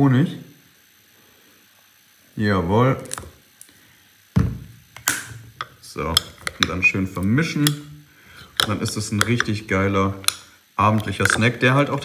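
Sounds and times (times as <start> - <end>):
knock on wooden tabletop: 4.4 - 4.7.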